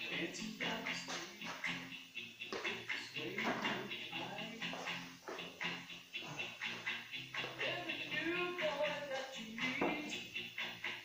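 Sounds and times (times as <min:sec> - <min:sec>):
music on radio: 0:00.0 - 0:11.0
voices on radio: 0:03.0 - 0:05.6.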